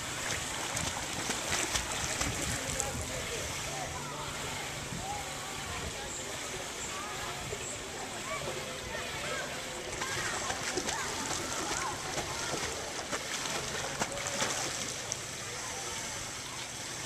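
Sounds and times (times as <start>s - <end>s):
pool water splashing: 0.0s - 17.0s.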